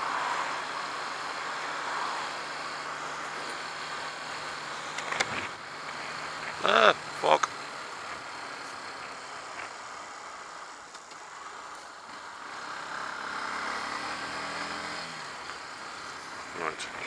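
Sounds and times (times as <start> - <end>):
wind and road rush: 0.0 - 17.0
coach passing: 5.4 - 9.2.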